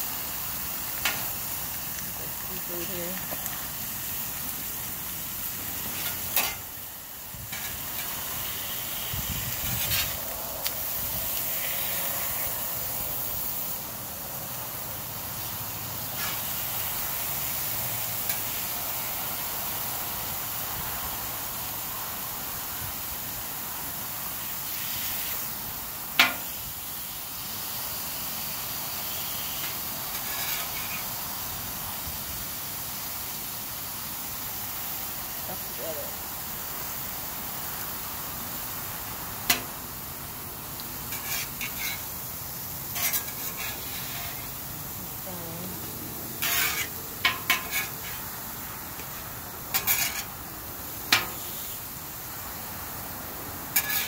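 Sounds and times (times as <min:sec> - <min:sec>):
food sizzling on griddle: 0:00.0 - 0:54.0.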